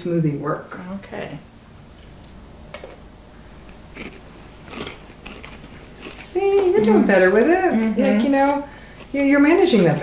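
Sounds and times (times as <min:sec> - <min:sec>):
mouth and lip eating sounds: 0:03.7 - 0:06.9.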